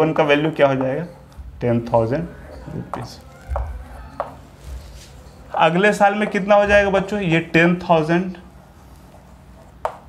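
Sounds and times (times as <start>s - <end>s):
chalk tapping on chalkboard: 2.9s - 5.7s, 9.1s - 10.0s.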